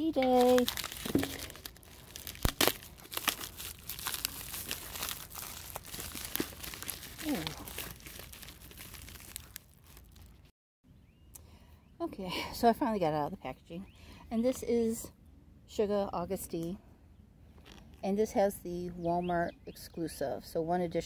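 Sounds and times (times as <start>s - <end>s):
plastic mailer crinkling: 0.0s - 10.5s.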